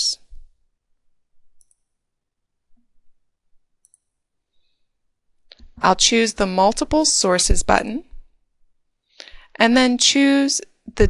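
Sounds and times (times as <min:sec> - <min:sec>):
computer mouse clicks: 0:01.6 - 0:01.9, 0:03.8 - 0:04.2.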